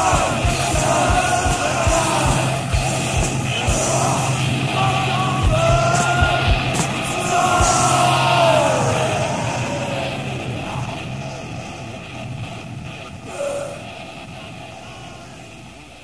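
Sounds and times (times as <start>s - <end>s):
tape hiss: 0.0s - 16.0s.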